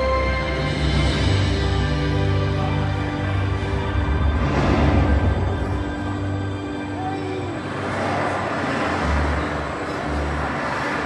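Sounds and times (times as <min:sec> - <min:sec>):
road traffic sound effect: 0:00.0 - 0:11.0
soundtrack music over loudspeakers: 0:00.0 - 0:11.0.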